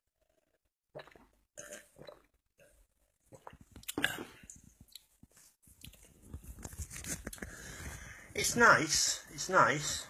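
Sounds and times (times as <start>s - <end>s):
person sipping and swallowing: 0.3s - 5.1s.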